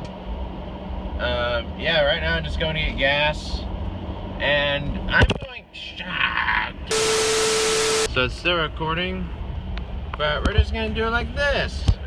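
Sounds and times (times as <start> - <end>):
steady hum-like tone: 0.2 - 10.2
loud static hiss: 6.9 - 8.2.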